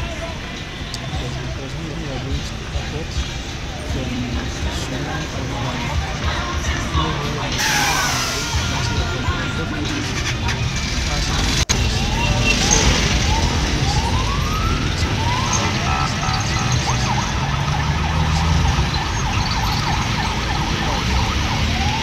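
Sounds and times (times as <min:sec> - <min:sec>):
road traffic engines: 0:00.0 - 0:22.0
electronic siren sweeps and chirps: 0:11.7 - 0:22.0.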